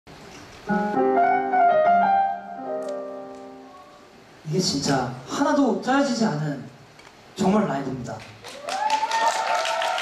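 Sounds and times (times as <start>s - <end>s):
keyboard playing piano chords: 0.6s - 4.3s.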